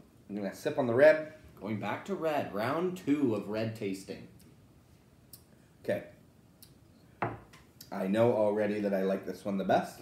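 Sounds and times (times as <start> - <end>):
glass knocking on wooden table: 7.2 - 7.5.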